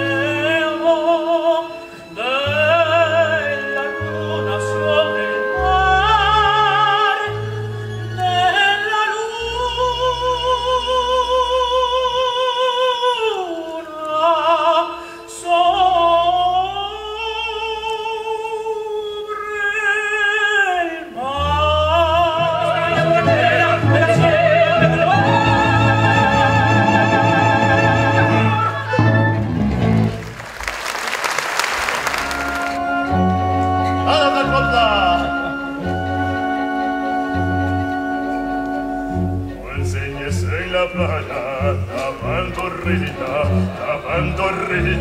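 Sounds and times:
orchestral accompaniment: 0:00.0 - 0:17.2, 0:21.3 - 0:45.0
person singing: 0:08.2 - 0:29.2, 0:32.4 - 0:45.0.

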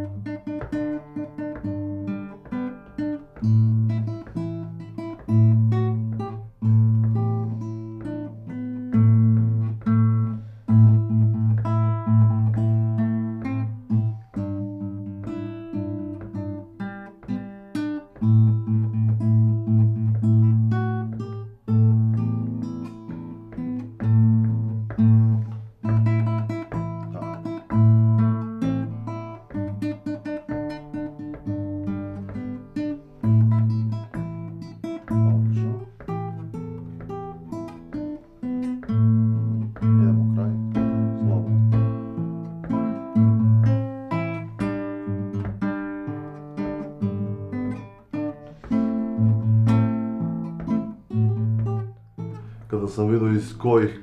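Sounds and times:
nylon-string guitar solo: 0:00.0 - 0:54.0.

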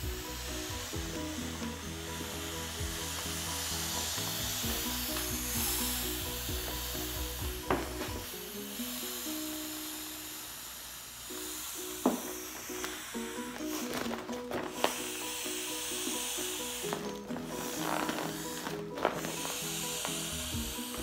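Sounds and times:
background music with bass: 0:00.0 - 0:10.2, 0:11.4 - 0:21.0
air hissing from valve: 0:00.0 - 0:21.0
plastic rubbing: 0:12.1 - 0:21.0.

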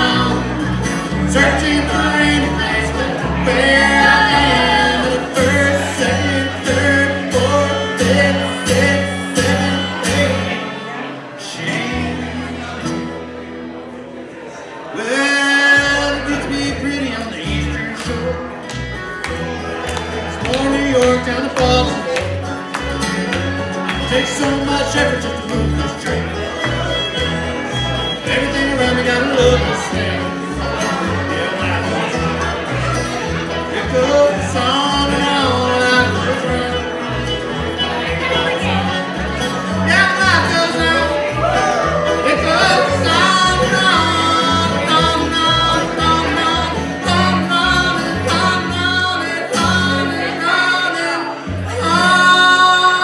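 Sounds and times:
person singing: 0:00.0 - 0:13.3, 0:14.9 - 0:53.0
upright bass plucking: 0:00.0 - 0:14.0, 0:15.0 - 0:53.0
banjo: 0:00.0 - 0:53.0
bluegrass band playing: 0:00.0 - 0:53.0
fiddle: 0:15.0 - 0:53.0.

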